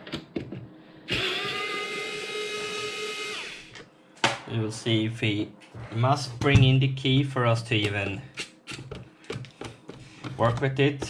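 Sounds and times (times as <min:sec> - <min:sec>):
electric screwdriver whining: 0:01.1 - 0:03.8.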